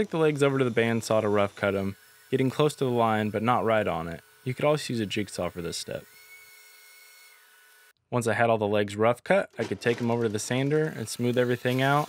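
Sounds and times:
band saw whine: 0.0s - 7.9s, 9.6s - 12.0s.

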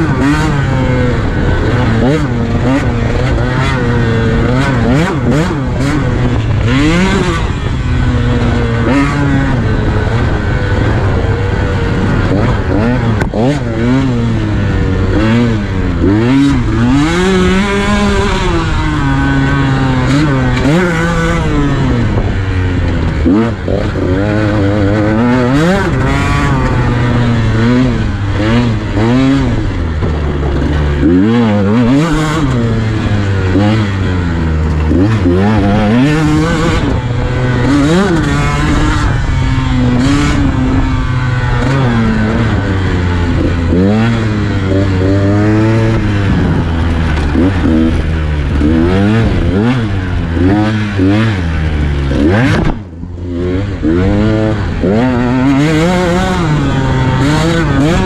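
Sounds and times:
two-stroke engine revving: 0.0s - 58.0s.

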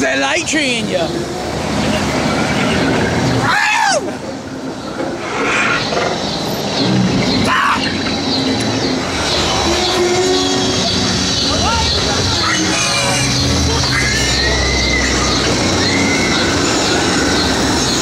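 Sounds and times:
rumbling ambient sound effects: 4.2s - 18.0s
steady low drone: 4.2s - 18.0s.

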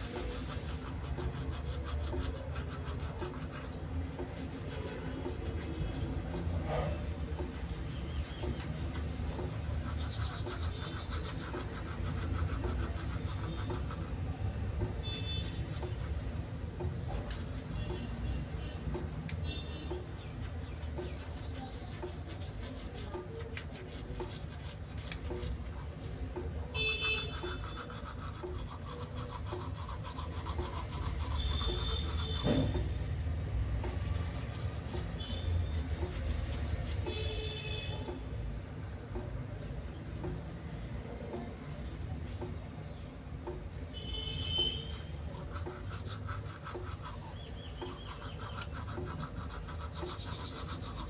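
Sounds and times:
toothbrush scrubbing wet foam: 0.0s - 42.7s, 43.4s - 51.0s.

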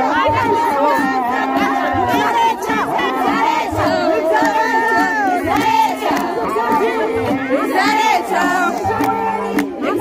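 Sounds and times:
women singing and calling out: 0.0s - 10.0s
hands clapping: 4.4s - 6.9s, 8.7s - 10.0s.

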